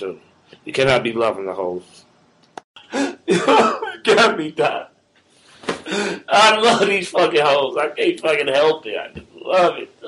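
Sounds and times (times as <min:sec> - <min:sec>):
man coughing: 0:02.9 - 0:04.4.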